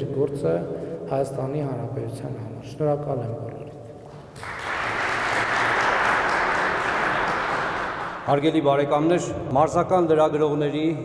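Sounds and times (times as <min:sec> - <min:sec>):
audience applauding in a hall: 0:04.1 - 0:08.6.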